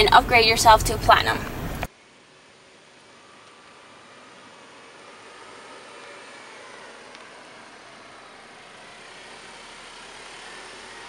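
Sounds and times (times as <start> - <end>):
tyres and engine hiss: 0.0 - 11.0.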